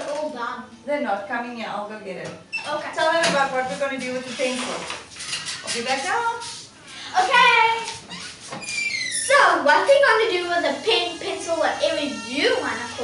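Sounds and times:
woman speaking: 0.8 - 5.0, 5.7 - 7.9, 9.3 - 13.0.

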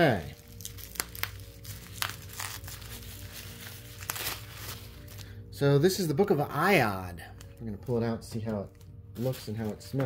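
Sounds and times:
bubble wrap crinkling: 0.0 - 5.5
background music: 0.0 - 10.0.

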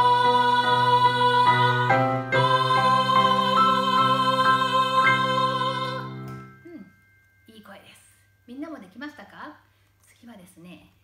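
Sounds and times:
group singing in falsetto: 0.0 - 6.2.

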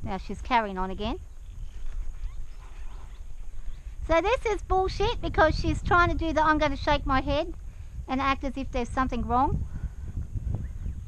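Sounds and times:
low uneven rumbling of horse walking: 0.0 - 11.0.

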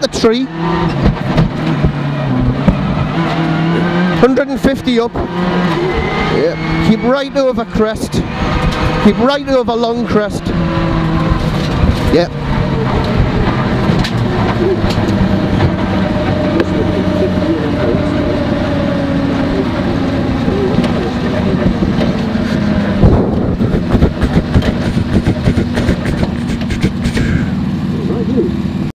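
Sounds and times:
rally car engine running hard: 0.0 - 28.9
road and drivetrain noise: 0.0 - 28.9
sharp cracks and knocks: 0.9 - 2.0.

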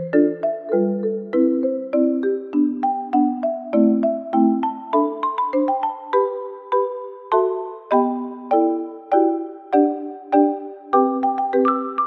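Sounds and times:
light instrumental music: 0.0 - 12.0.

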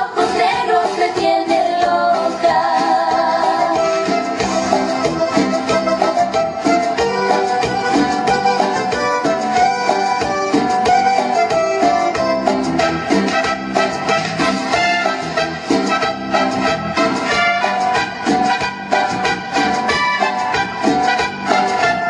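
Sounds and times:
woman singing: 0.0 - 4.3
bongos: 0.0 - 22.0
drum kit: 0.0 - 22.0
saxophone: 3.4 - 22.0
trumpet: 3.6 - 22.0
electric guitar: 4.3 - 22.0.

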